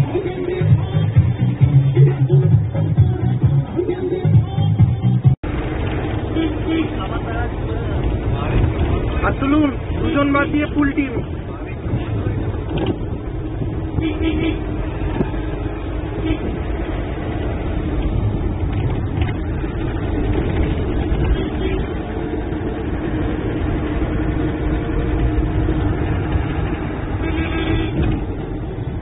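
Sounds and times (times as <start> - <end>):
minibus engine running: 0.0 - 29.0
road rumble: 0.0 - 29.0.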